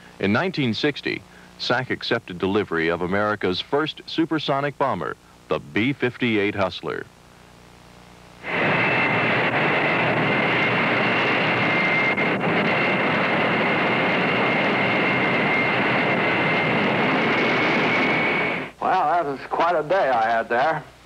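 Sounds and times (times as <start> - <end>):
jet engines roaring with whine: 8.4 - 19.3.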